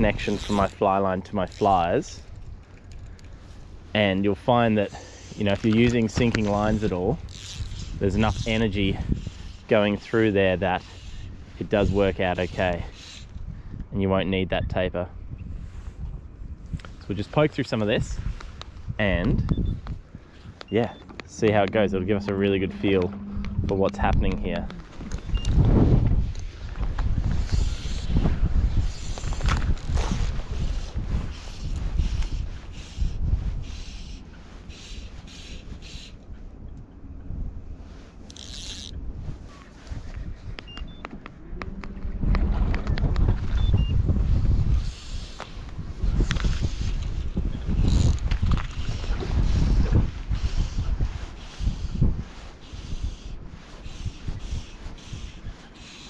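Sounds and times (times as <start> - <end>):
wind buffeting microphone: 0.0 - 35.8, 36.4 - 56.0.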